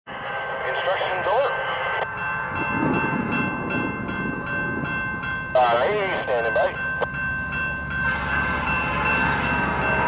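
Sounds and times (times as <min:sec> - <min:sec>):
crossing warning bell ringing: 0:00.1 - 0:10.0.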